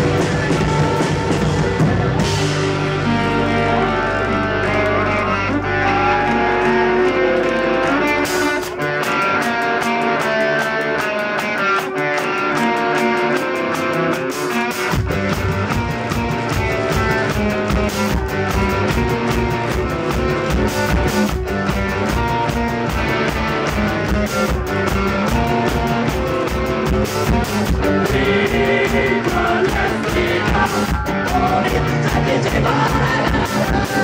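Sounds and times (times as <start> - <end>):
drums and bass beat: 0.0 - 34.0
electric guitar: 0.0 - 34.0
live rock band playing: 0.0 - 34.0.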